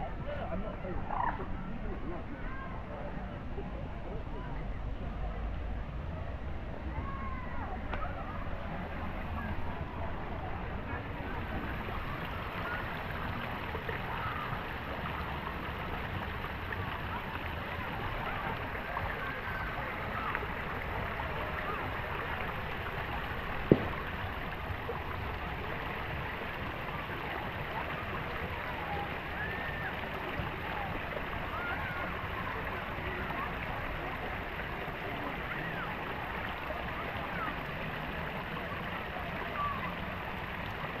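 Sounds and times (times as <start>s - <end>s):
murmur of distant voices: 0.0s - 41.0s
water trickling over rocks: 7.8s - 41.0s.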